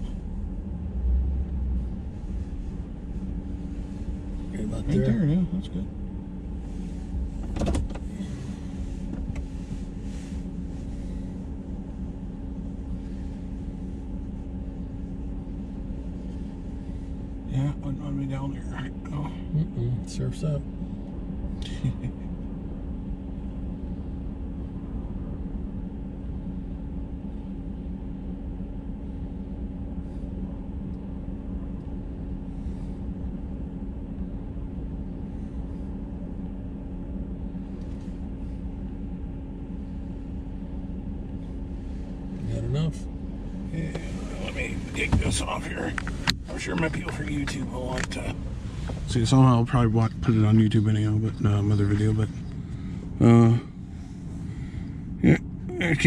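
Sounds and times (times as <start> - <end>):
truck engine idling: 28.7 - 56.0
muffled words: 43.7 - 48.4, 49.0 - 52.4.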